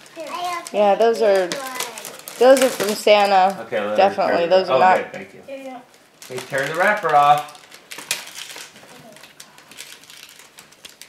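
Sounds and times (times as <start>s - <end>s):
wrapping paper crinkling: 0.0s - 3.9s, 5.6s - 11.0s.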